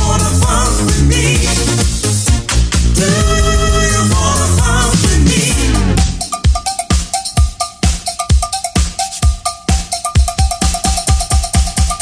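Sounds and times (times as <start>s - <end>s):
drum machine beat: 0.0s - 12.0s
vocal dance track: 0.0s - 12.0s.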